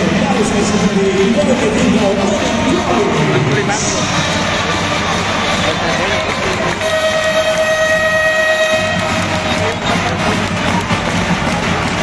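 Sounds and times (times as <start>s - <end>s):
arena crowd noise: 0.0s - 12.0s
music: 0.0s - 12.0s
horn held note: 6.7s - 9.3s.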